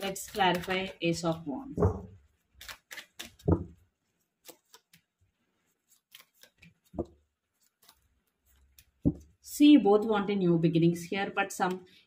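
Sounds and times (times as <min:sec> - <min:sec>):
cards clicking and snapping: 0:02.6 - 0:03.8, 0:06.0 - 0:07.1.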